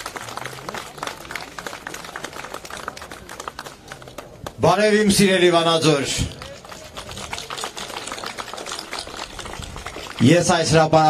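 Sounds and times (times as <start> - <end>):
crowd clapping: 0.0 - 11.0
man speaking over microphone: 4.6 - 6.4, 10.2 - 11.0.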